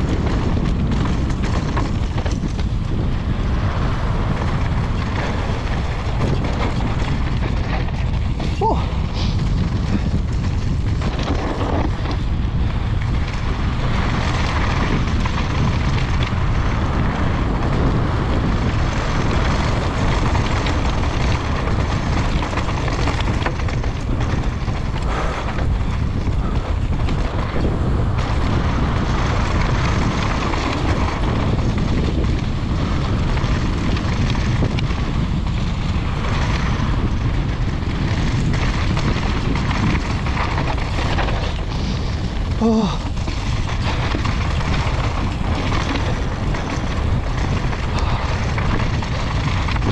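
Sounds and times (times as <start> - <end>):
bike tyres rolling over dirt: 0.0 - 49.9
wind rushing on microphone: 0.0 - 49.9.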